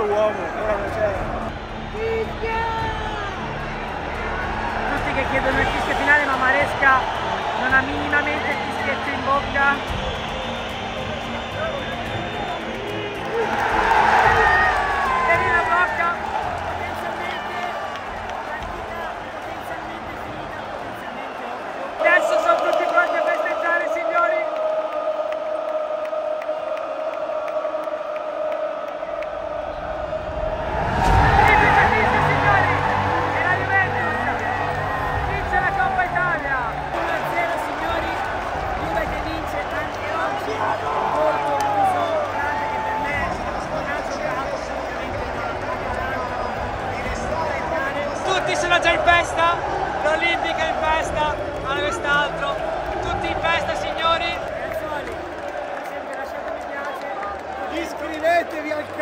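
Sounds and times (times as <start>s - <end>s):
stadium crowd cheering and singing: 0.0s - 59.0s.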